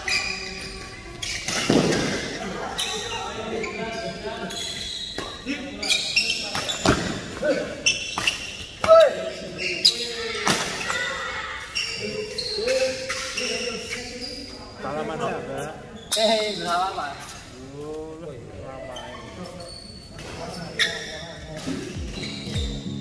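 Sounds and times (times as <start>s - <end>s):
shoes squeaking on court: 0.0s - 14.8s, 18.8s - 23.0s.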